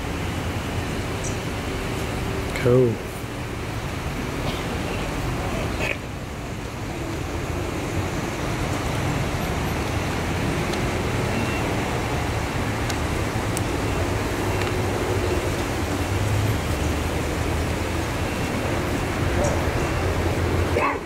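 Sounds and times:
low rumbling outdoor noise: 0.0 - 21.0.

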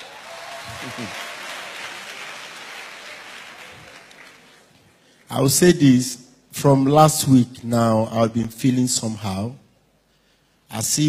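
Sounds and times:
voices among clapping: 0.0 - 4.8
congregation applauding: 0.0 - 5.3.

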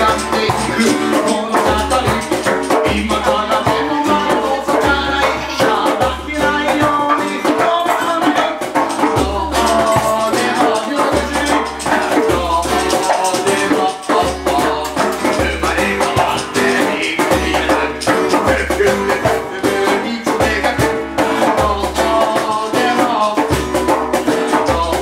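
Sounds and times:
acoustic band playing upbeat song: 0.0 - 25.0.

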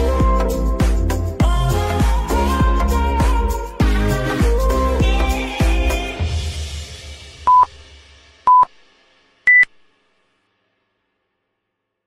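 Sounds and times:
background music: 0.0 - 8.9
timer countdown beeps: 7.5 - 7.7, 8.5 - 8.7, 9.5 - 9.7.

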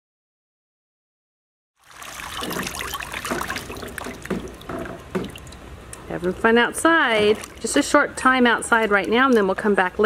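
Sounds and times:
water splashing and trickling: 1.8 - 9.9.

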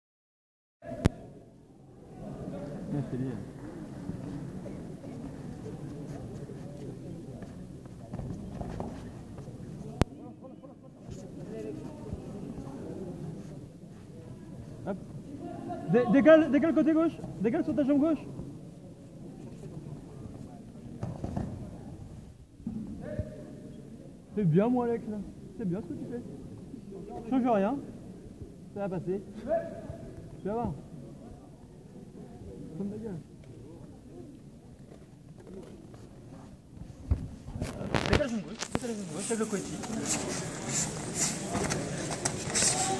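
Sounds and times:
murmur of the hall: 0.8 - 42.9.

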